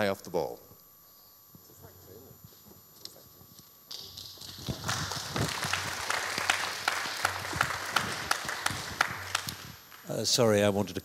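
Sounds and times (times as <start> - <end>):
audience applauding: 3.9 - 10.3.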